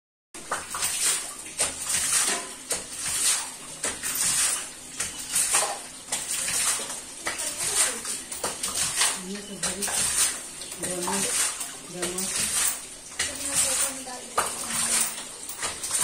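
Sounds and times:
water and mud sloshing: 0.4 - 16.0.

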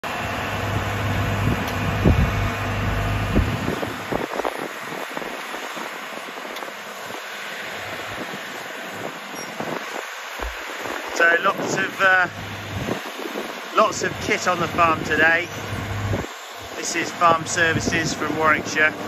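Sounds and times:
diesel engines droning: 0.0 - 19.0.

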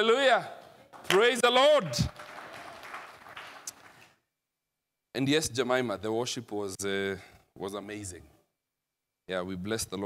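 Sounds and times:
congregation applauding: 0.9 - 4.2.

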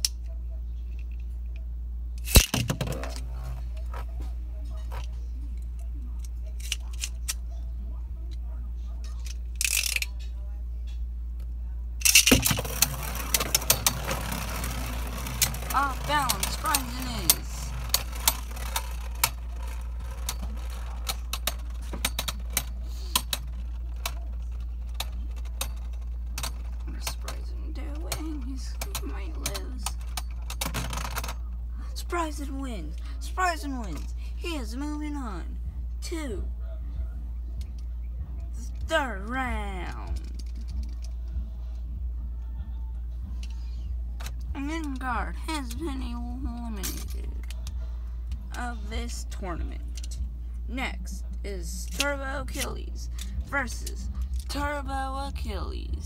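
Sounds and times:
spinning tops clacking: 12.0 - 31.4.

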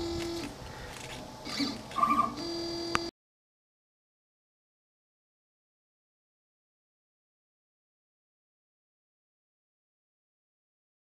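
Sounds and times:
stepper motor whines: 0.0 - 3.1.

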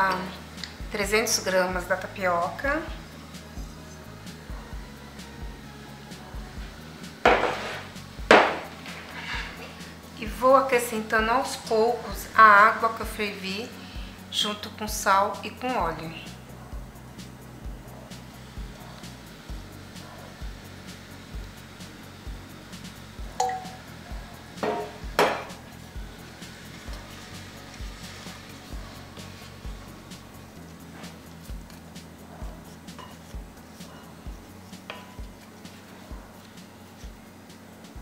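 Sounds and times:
background music with steady beat: 0.0 - 38.0
spoon stirring dry starch: 7.3 - 8.0, 8.7 - 10.7, 23.5 - 37.6
spoon clinking against glass: 23.4 - 23.8.

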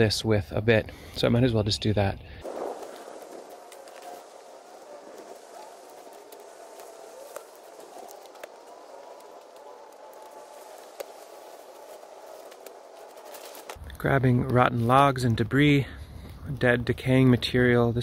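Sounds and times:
outdoor background noise: 0.0 - 18.0.

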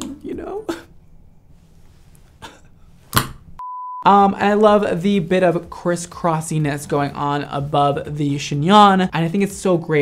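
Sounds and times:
censor bleep: 3.6 - 4.1.

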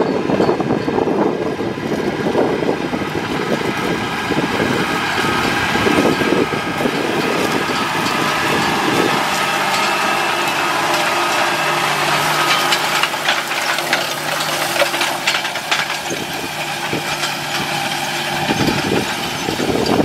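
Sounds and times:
planter clicks and rattles: 0.0 - 20.0
tractor diesel engine running: 0.0 - 20.0.

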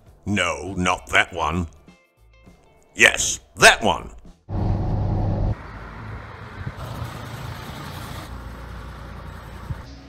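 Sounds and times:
diesel bus engine humming: 4.5 - 10.0
vehicle background noise: 4.5 - 10.0.

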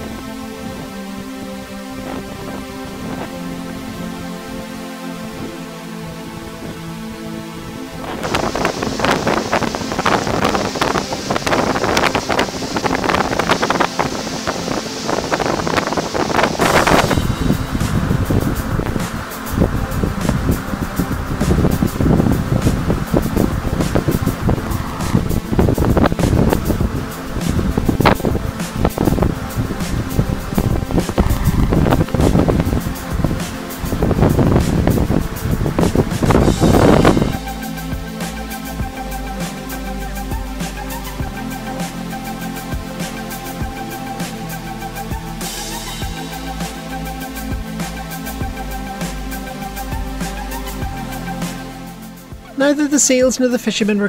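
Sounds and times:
wind buffeting microphone: 0.0 - 39.4
background music: 0.0 - 54.0.

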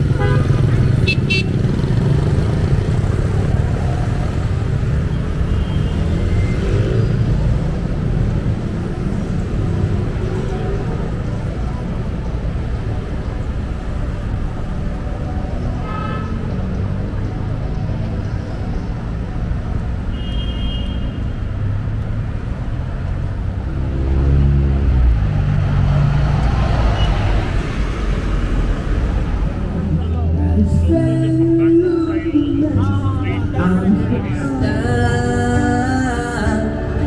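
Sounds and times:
traffic driving past: 0.0 - 37.0
loud vehicle engine passing: 21.7 - 31.8.

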